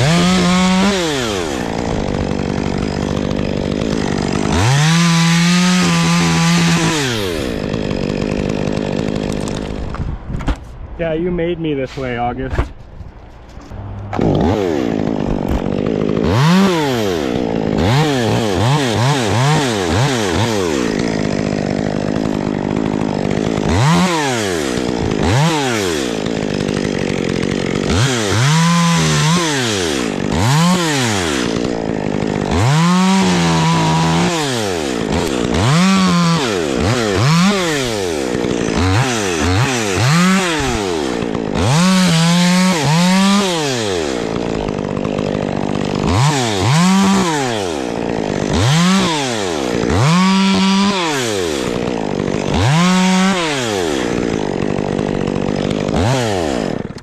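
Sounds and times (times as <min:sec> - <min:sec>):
chainsaw revving and cutting wood: 0:00.0 - 0:10.1, 0:13.8 - 0:57.0.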